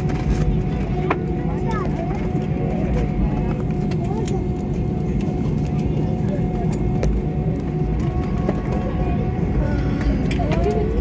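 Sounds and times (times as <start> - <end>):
airliner rumble: 0.0 - 11.0
chatter of voices: 0.0 - 11.0.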